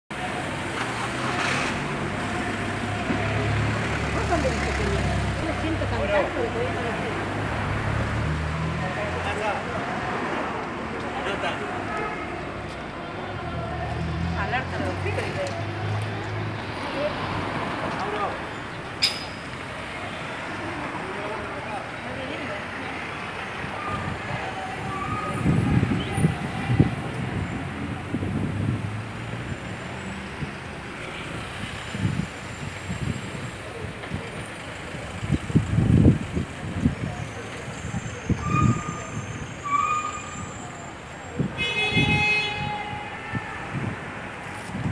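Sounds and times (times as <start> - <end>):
street traffic engine hum: 0.1 - 44.9
people talking: 2.2 - 7.3.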